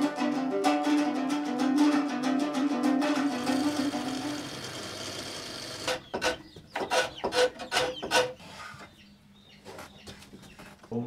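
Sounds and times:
plucked lute notes ringing: 0:00.0 - 0:05.0
blade shaving wood: 0:03.0 - 0:08.4.

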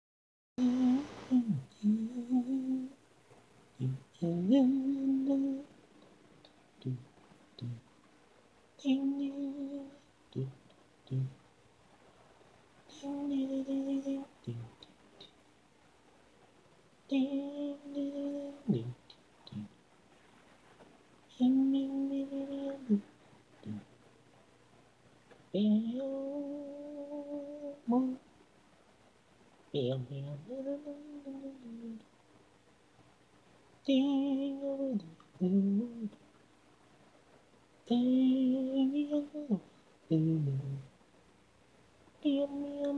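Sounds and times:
person humming a melody: 0:00.6 - 0:03.0, 0:03.8 - 0:05.7, 0:06.8 - 0:07.8, 0:08.8 - 0:11.4, 0:12.9 - 0:15.3, 0:17.1 - 0:19.7, 0:21.3 - 0:23.9, 0:25.6 - 0:28.2, 0:29.8 - 0:32.0, 0:33.8 - 0:36.2, 0:37.9 - 0:40.9, 0:42.2 - 0:42.9.

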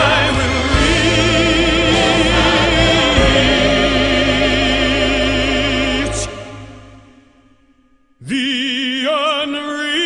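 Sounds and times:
choir: 0:00.0 - 0:07.3
sustained low accompaniment: 0:00.0 - 0:08.1.

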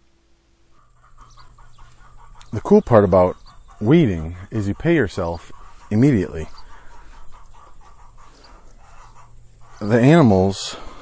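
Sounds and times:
chickens clucking: 0:00.6 - 0:11.0.

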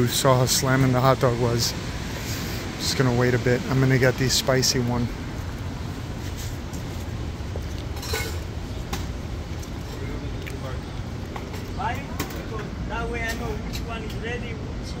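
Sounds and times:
street traffic rumbling: 0:00.0 - 0:15.0
faint voices talking: 0:09.6 - 0:15.0.

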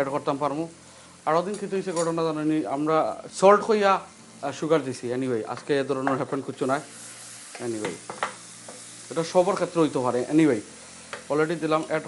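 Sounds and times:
man talking: 0:00.0 - 0:06.9, 0:07.6 - 0:08.0, 0:09.1 - 0:10.7, 0:11.3 - 0:12.0
curry sizzling in a pan: 0:00.0 - 0:12.0.

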